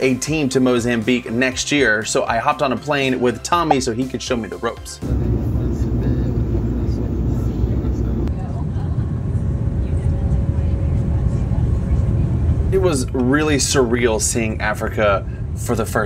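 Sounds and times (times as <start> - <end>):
airliner cabin engine rumble: 5.0 - 16.0.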